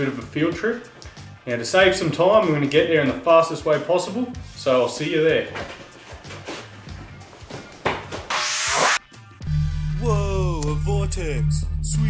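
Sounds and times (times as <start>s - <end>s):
background music with light beat: 0.0s - 12.0s
swoosh transition effect: 8.3s - 9.0s.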